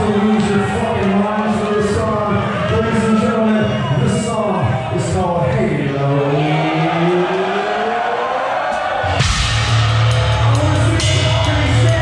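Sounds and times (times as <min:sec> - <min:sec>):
drums: 0:08.7 - 0:12.0
distorted electric guitars droning: 0:09.1 - 0:12.0.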